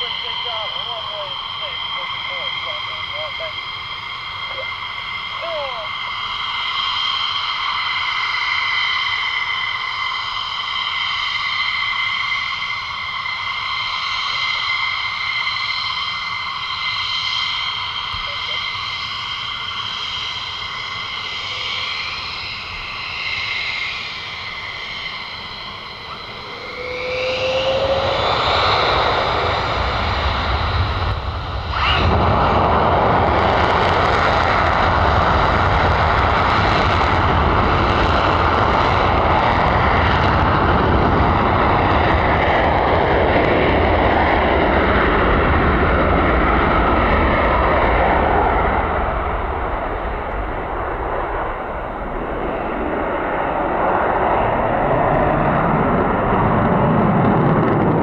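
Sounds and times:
jet engines roaring on takeoff: 0:00.0 - 0:58.0.

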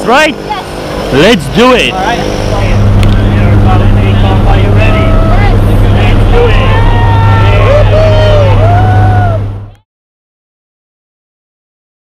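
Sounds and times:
small plane engine and propeller drone: 0:00.0 - 0:09.8
raised voices: 0:00.4 - 0:09.8.

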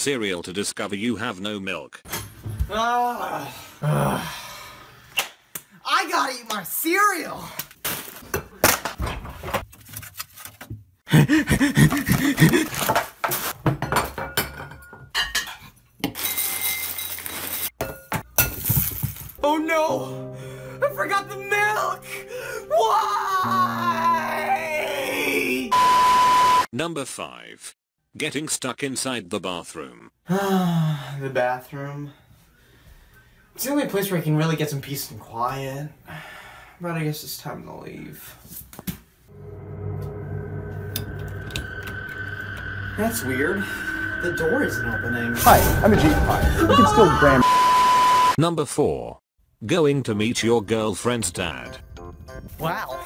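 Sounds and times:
thin high tone: 0:39.3 - 0:48.2
steady hum: 0:39.4 - 0:47.4.

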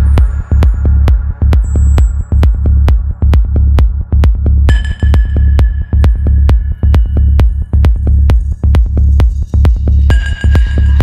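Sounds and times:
electronic kick drum: 0:00.0 - 0:11.0
heavy rolling bassline: 0:00.0 - 0:11.0.

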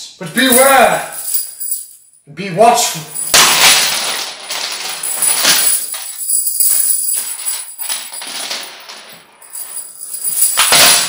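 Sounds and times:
metal chains rattling on wooden floor: 0:00.4 - 0:02.1, 0:03.1 - 0:11.0.

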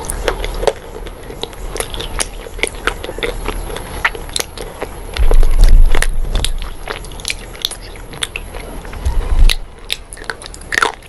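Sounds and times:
crunchy chewing: 0:00.0 - 0:11.0
low rumble: 0:05.1 - 0:10.2.

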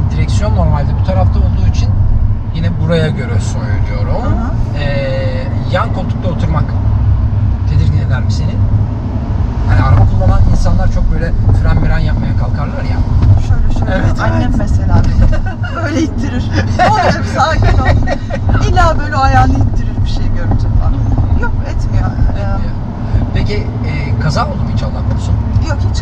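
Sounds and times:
car road and engine rumble: 0:00.0 - 0:26.0
voices talking: 0:09.7 - 0:26.0.

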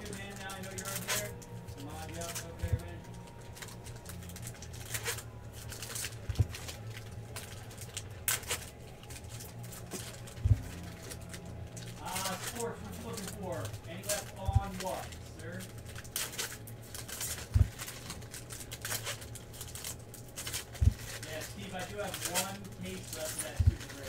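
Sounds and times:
foil wrappers crinkling and tearing: 0:00.0 - 0:24.0.

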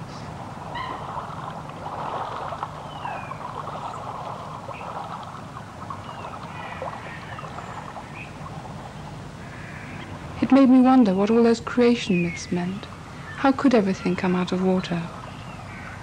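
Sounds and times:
river water flowing and gurgling: 0:00.0 - 0:16.0.

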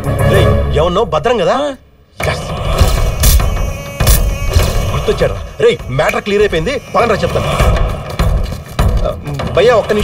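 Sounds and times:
background film score: 0:00.0 - 0:10.0.

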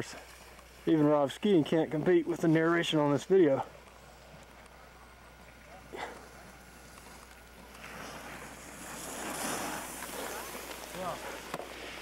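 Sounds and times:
faint distant voices: 0:03.5 - 0:07.6.

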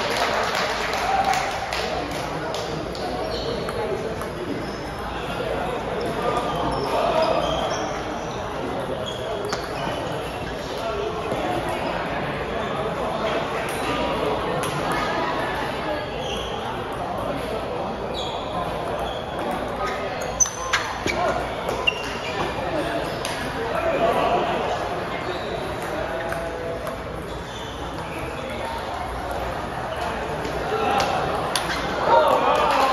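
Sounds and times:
background chatter: 0:00.0 - 0:32.9.

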